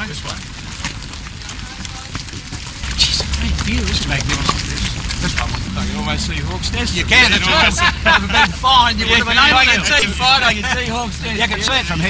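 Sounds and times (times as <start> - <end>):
steady noise and low rumble: 0.0 - 12.0.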